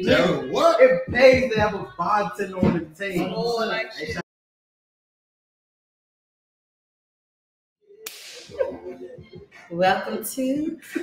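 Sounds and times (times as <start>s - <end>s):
voices talking: 0.0s - 4.2s, 8.4s - 11.0s
sharp crack sound effect: 8.1s - 8.6s.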